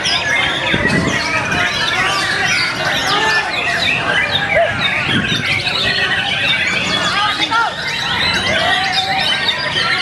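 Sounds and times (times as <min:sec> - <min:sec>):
birds whistling and trilling: 0:00.0 - 0:10.0
murmur of voices: 0:00.0 - 0:10.0.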